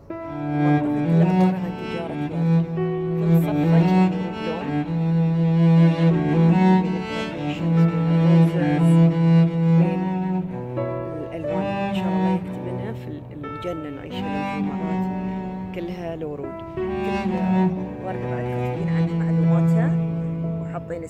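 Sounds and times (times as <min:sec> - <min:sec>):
cello playing long held notes: 0:00.0 - 0:21.0.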